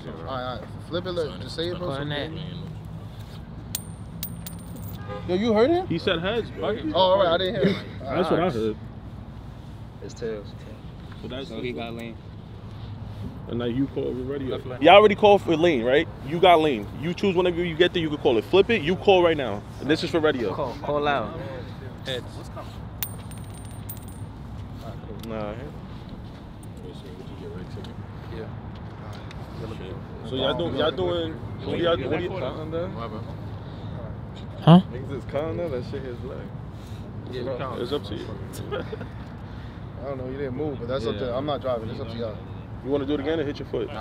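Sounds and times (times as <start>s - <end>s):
metal coin bouncing on ground: 3.8s - 5.0s, 23.0s - 24.3s.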